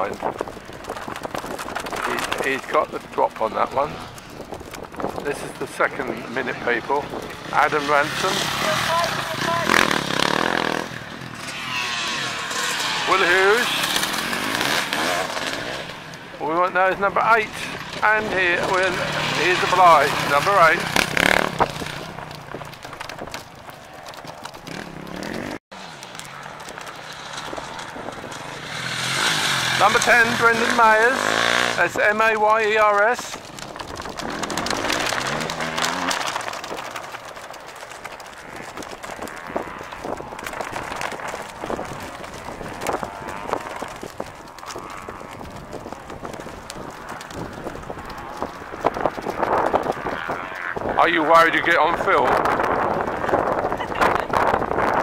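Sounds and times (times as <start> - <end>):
footsteps: 0.0 - 55.0
dirt bike engine speeding away: 5.1 - 55.0
tyre throwing up grass and soil: 32.6 - 38.2
small ticks: 33.3 - 50.9.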